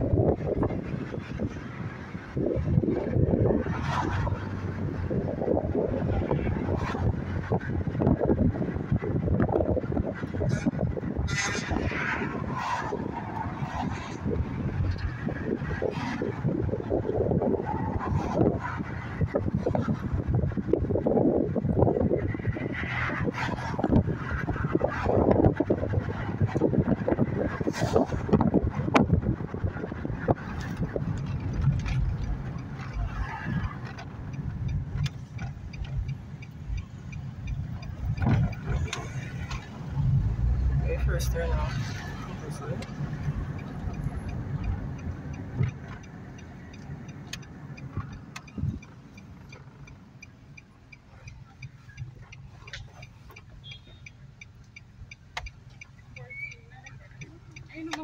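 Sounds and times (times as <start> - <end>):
car cabin road rumble: 0.0 - 58.0.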